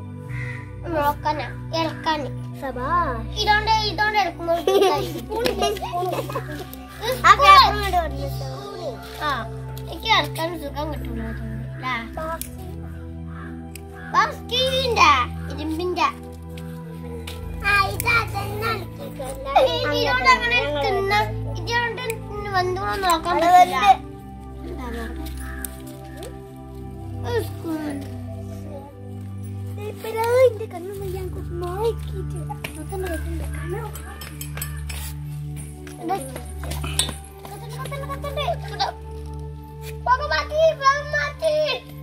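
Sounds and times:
children talking and calling out: 0.0 - 42.0.

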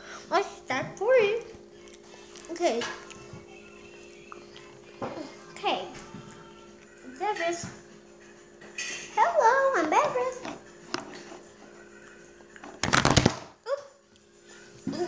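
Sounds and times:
child sing-song vocalizing: 0.0 - 7.8, 14.8 - 15.0
faint steady hum: 0.0 - 15.0
crackling clatter: 12.7 - 13.5.

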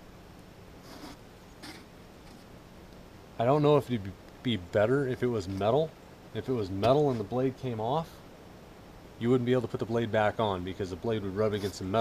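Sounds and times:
soft rustles: 0.8 - 2.6, 11.4 - 12.0.

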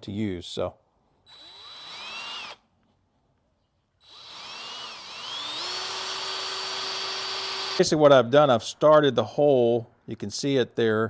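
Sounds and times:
power drill whining: 1.3 - 2.6, 4.0 - 7.9.

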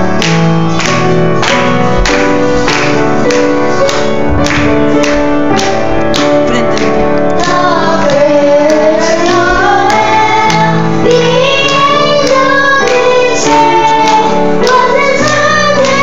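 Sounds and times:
grand piano: 0.0 - 16.0
children singing a carol: 7.4 - 16.0.

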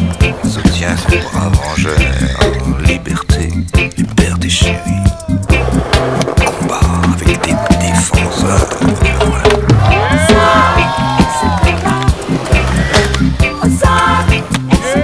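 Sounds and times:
music with steady bass beat: 0.0 - 15.0
skateboard wheels rolling: 5.4 - 15.0
skateboard clacks: 5.5 - 10.0.

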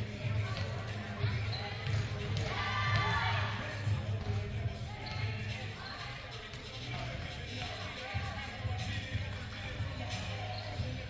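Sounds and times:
volleyballs hit and bouncing: 0.0 - 5.6.

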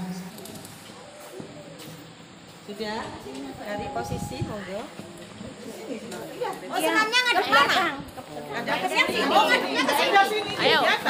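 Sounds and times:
women chattering: 2.6 - 11.0.

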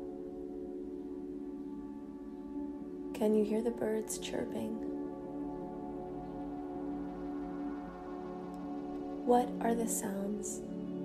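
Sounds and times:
ambient music bell-like tones: 0.0 - 11.0.

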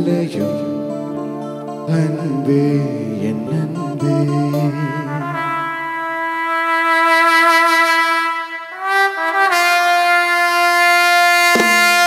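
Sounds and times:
orchestra playing held brass notes: 4.9 - 12.0.

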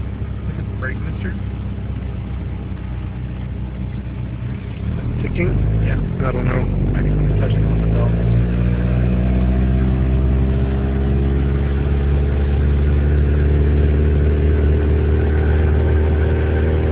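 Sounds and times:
car engine revving from cabin: 4.4 - 16.9.

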